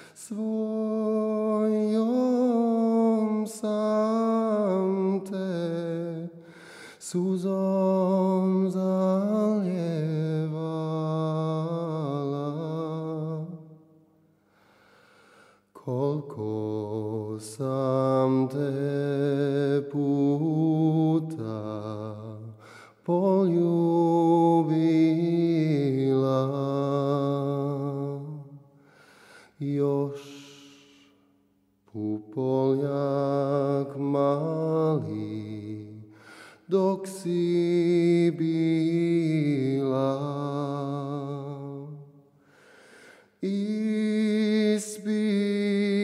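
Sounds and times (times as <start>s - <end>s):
man singing with vibrato: 0.0s - 13.8s, 15.7s - 28.6s, 29.5s - 31.3s, 31.9s - 42.3s, 43.2s - 46.0s
man singing a long note: 29.6s - 31.1s.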